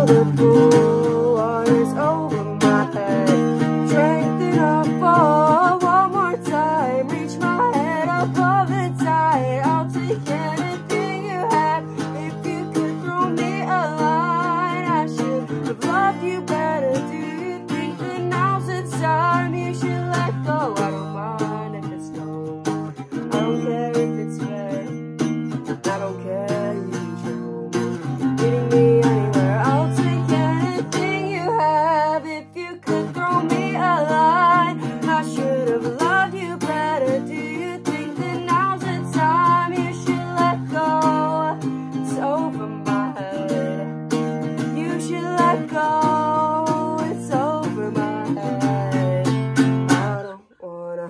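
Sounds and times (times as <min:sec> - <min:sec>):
acoustic guitar strumming chords: 0:00.0 - 0:50.4
person singing: 0:00.0 - 0:51.0.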